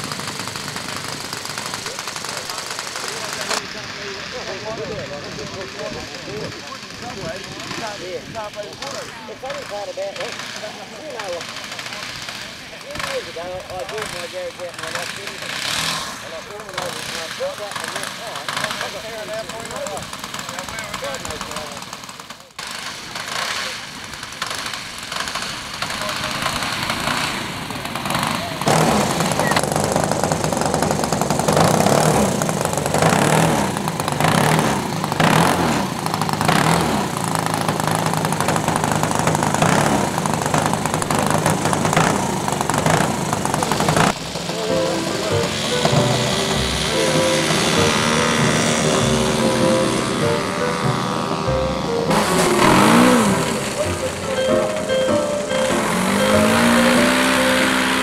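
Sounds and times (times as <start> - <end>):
model aircraft engine running: 0.0 - 54.3
music with held notes: 44.2 - 58.0.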